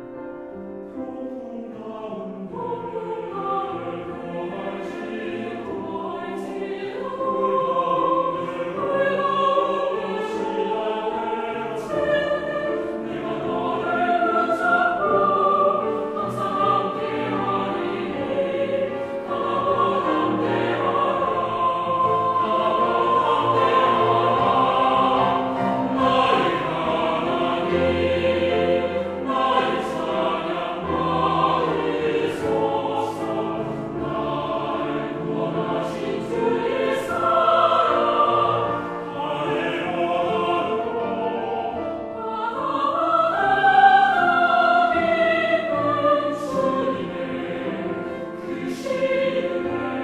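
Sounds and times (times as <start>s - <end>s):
choir singing: 0.0s - 50.0s
keyboard accompaniment: 0.0s - 50.0s.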